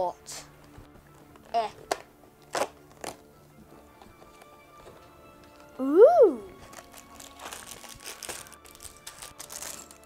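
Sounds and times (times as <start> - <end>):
packaging crinkling and rustling: 1.2 - 3.3, 6.6 - 10.0
child exclamation: 5.8 - 6.5.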